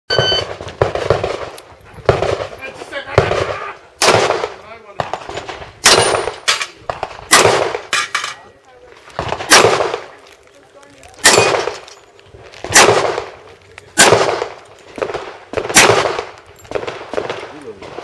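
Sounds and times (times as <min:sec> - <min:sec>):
shot timer beep: 0:00.1 - 0:00.5
handgun shots with echo: 0:09.2 - 0:10.1, 0:11.2 - 0:11.9, 0:14.0 - 0:18.0.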